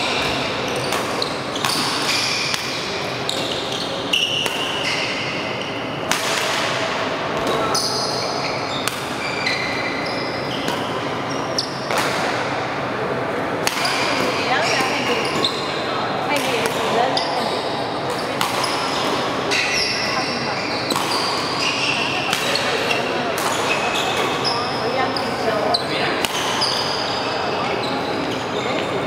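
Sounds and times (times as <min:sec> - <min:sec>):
shoes squeaking on court: 0:00.0 - 0:05.9, 0:07.4 - 0:12.0, 0:14.0 - 0:15.8, 0:16.4 - 0:29.0
echoing background murmur: 0:00.0 - 0:29.0
racket striking shuttlecock: 0:06.1 - 0:06.8, 0:18.1 - 0:19.2, 0:20.9 - 0:21.5.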